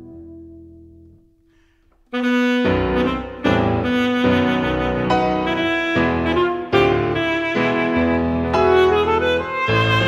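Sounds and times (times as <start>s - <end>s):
piano: 0.0s - 10.0s.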